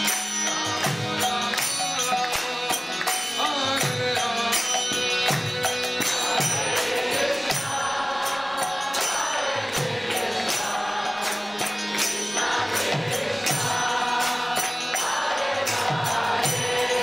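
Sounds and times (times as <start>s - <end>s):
hand cymbals striking: 0.0s - 17.0s
group chanting a mantra: 5.3s - 17.0s
drum: 9.1s - 10.8s, 12.8s - 17.0s.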